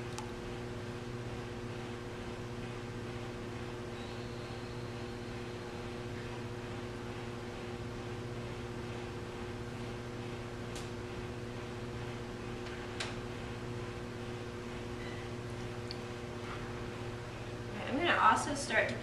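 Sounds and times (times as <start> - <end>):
potter's wheel motor humming: 0.0 - 19.0.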